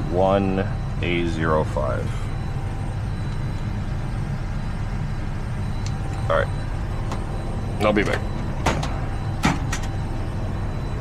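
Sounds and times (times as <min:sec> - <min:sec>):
low rumble of aircraft systems: 0:00.0 - 0:11.0.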